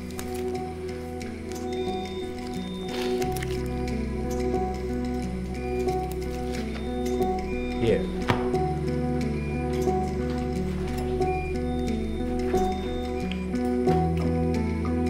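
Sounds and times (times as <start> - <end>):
dramatic background music: 0.0 - 15.0.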